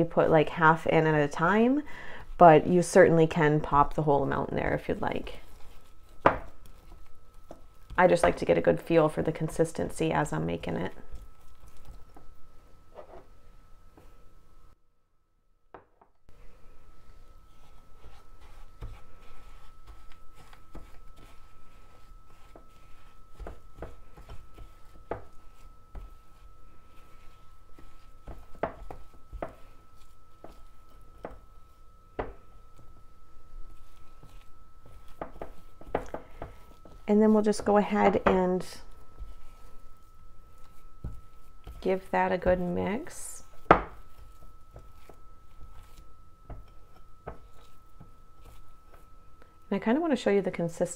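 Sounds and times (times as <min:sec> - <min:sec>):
spatula scraping sugar in glass bowl: 0:03.2 - 0:12.2, 0:17.2 - 0:31.9, 0:33.5 - 0:49.2.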